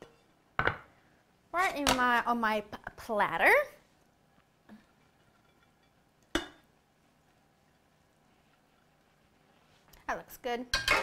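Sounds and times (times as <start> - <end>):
kitchenware clink: 10.7 - 11.0.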